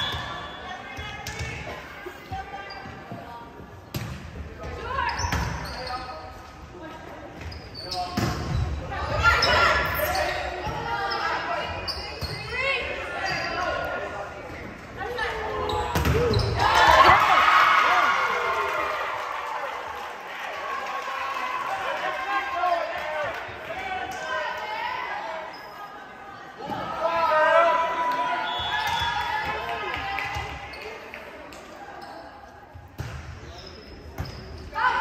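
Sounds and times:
players calling and shouting: 7.3s - 19.3s.

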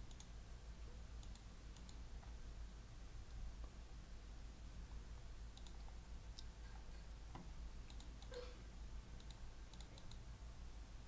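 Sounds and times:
faint small clicks: 0.0s - 0.4s, 1.2s - 2.4s, 5.5s - 8.4s, 9.2s - 10.3s
low steady hum: 0.0s - 11.0s.

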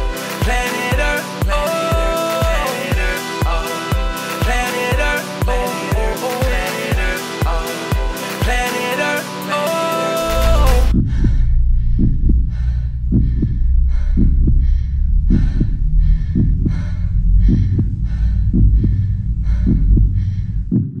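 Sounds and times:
rhythmic hiss: 0.0s - 10.9s
steady deep hum: 10.2s - 21.0s
heartbeat double beat: 10.3s - 21.0s.

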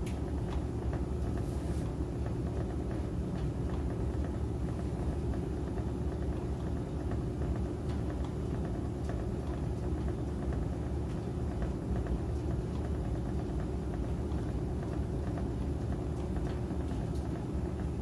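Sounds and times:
washing machine spinning: 0.0s - 18.0s.

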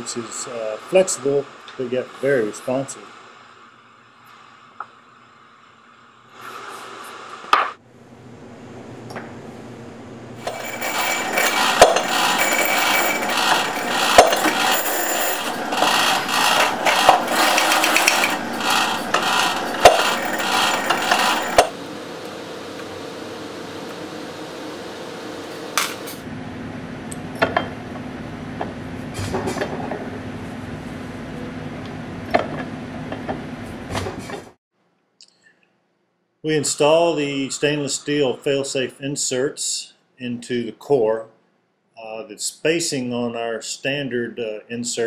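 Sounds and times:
steady machine hum: 7.8s - 29.0s
metal clinking and scraping: 10.4s - 21.8s.

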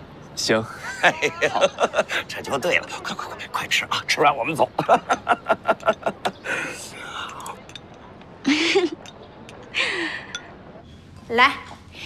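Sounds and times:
man laughing: 0.7s - 2.7s, 4.8s - 6.3s
breathy whisper-like sound: 6.4s - 7.6s.

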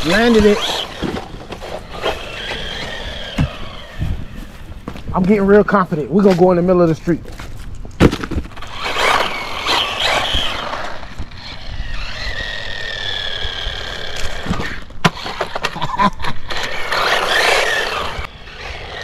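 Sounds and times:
electric motor whining: 0.0s - 4.8s, 8.6s - 15.7s, 16.4s - 19.0s.

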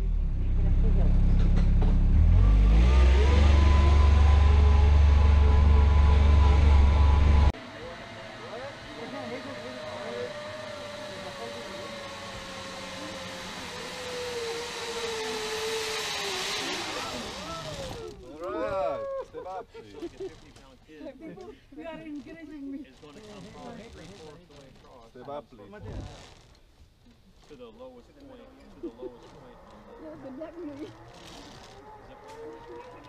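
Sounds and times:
vehicle engine running loudly: 0.0s - 17.9s
zip-line trolley whine on cable: 2.7s - 19.0s, 28.6s - 33.0s.

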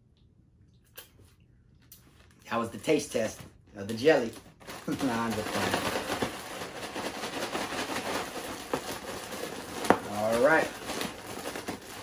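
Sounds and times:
plastic bag of chips crinkling: 2.0s - 12.0s.

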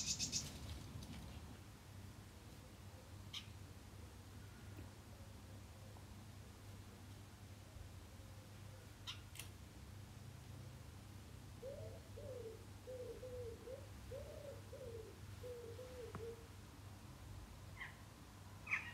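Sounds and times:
small bird chirp: 0.0s - 0.5s
dove cooing: 11.6s - 16.5s.

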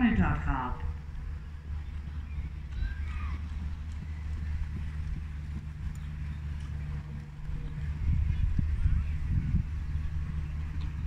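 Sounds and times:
steady low rumble: 0.0s - 11.0s
horse hoofbeats on sand: 0.9s - 11.0s.

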